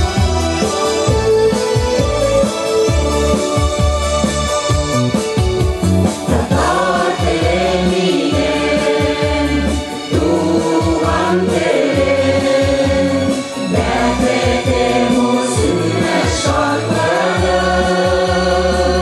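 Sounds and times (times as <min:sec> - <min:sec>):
instrumental accompaniment: 0:00.0 - 0:19.0
mixed choir singing: 0:06.2 - 0:19.0.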